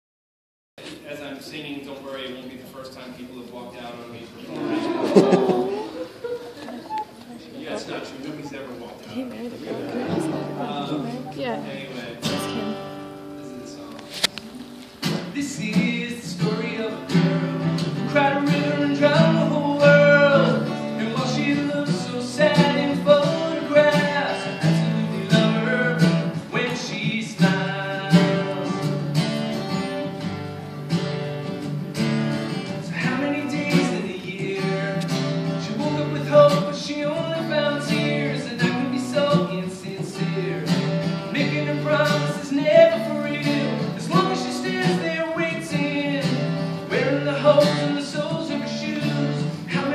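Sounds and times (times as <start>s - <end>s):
acoustic guitar strumming: 9.8s - 49.9s.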